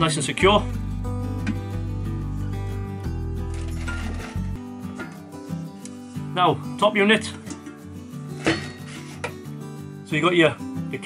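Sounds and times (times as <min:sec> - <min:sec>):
music with sustained chords: 0:00.0 - 0:11.0
deep bass: 0:00.4 - 0:03.6.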